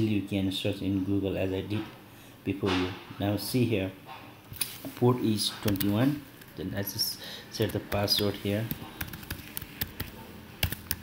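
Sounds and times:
keyboard keystrokes: 7.6 - 11.0.

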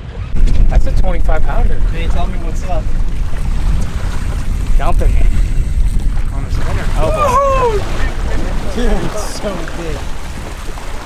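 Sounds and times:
choppy sea water: 0.0 - 11.0
wind rumbling on microphone: 0.0 - 11.0.

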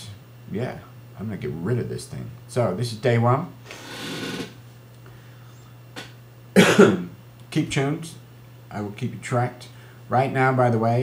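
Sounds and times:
low electrical hum: 0.0 - 11.0
breathy exhale: 3.6 - 4.5.

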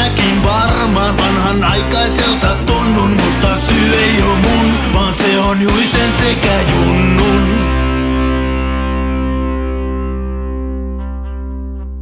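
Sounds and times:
distorted electric guitar chord ringing: 0.0 - 12.0.

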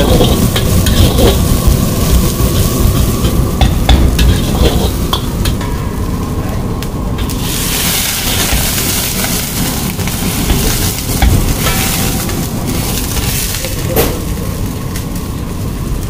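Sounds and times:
ladle scraping in wok: 0.0 - 5.7, 7.2 - 14.4
liquid hissing in hot wok: 0.0 - 6.2, 7.1 - 16.0
vegetables sizzling: 0.0 - 16.0.

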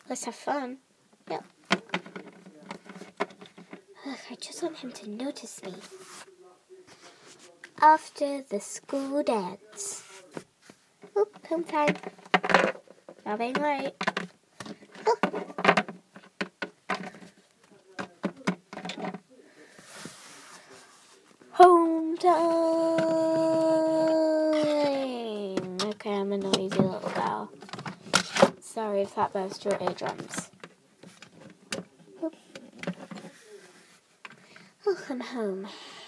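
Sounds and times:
soft rustling hiss: 0.0 - 36.0
plastic toys clicking and tapping: 1.6 - 3.8, 11.1 - 17.4, 18.0 - 19.2.

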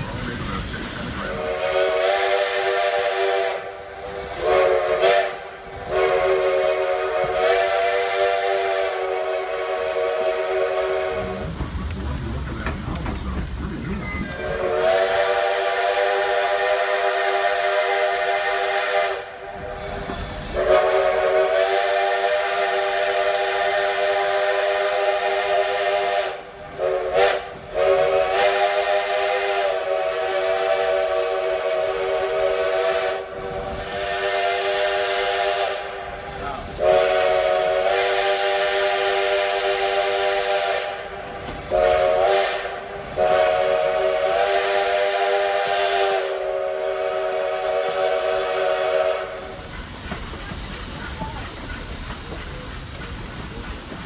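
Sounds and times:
train running: 0.0 - 54.0
steam whistle blasts: 1.4 - 11.4, 14.4 - 49.6.

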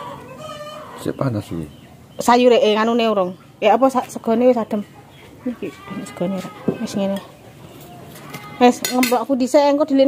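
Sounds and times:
woman talking: 2.2 - 7.3, 8.5 - 10.0
dishes and cutlery clinking: 8.0 - 9.4.

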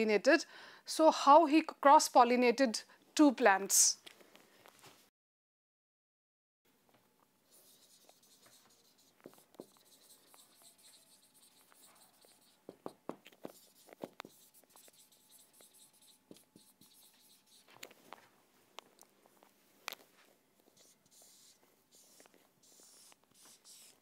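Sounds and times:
marker squeaking on whiteboard: 7.5 - 18.0, 20.6 - 24.0
marker tapping on whiteboard: 7.9 - 17.4.

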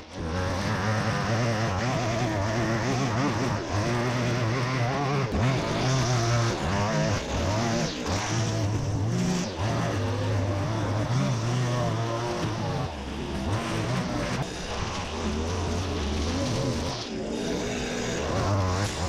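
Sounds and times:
line trimmer engine revving: 0.0 - 19.0.

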